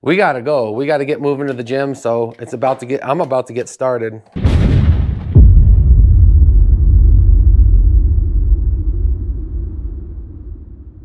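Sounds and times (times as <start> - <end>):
cinematic boom: 4.4 - 11.0
low rumble: 4.5 - 11.0.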